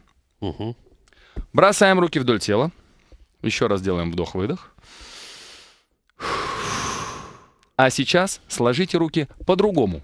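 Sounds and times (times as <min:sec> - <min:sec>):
person inhaling: 0:04.8 - 0:07.7
person exhaling: 0:05.0 - 0:07.6.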